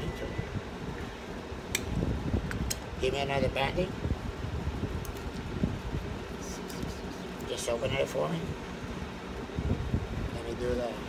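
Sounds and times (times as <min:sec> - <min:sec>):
low rumbling fan noise: 0:00.0 - 0:11.0.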